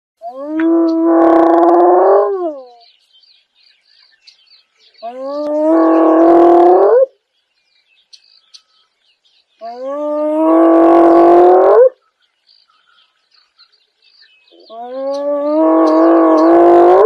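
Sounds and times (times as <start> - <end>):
hyena calling: 0.2 - 2.9, 5.0 - 7.2, 9.6 - 12.2, 14.5 - 17.0
faint bird chirps: 0.2 - 17.0.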